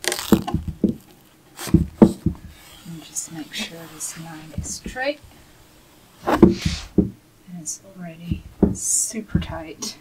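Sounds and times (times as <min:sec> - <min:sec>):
fabric rustling and scraping: 0:00.0 - 0:07.0
dull knocks on frame: 0:00.3 - 0:01.0, 0:01.7 - 0:02.6, 0:04.5 - 0:05.0, 0:06.3 - 0:07.2, 0:08.2 - 0:09.6.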